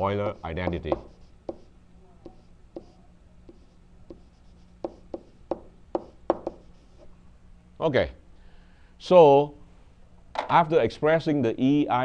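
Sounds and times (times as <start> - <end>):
stylus scratching: 0.0 - 5.4, 6.0 - 7.1
faint low hum: 0.0 - 12.0
stylus tapping on tablet screen: 0.7 - 6.7.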